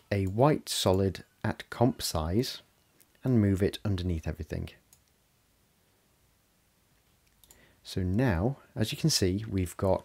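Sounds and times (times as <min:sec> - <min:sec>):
man talking: 0:00.0 - 0:04.8, 0:07.8 - 0:10.0
computer mouse clicks: 0:04.9 - 0:05.2, 0:07.2 - 0:07.6.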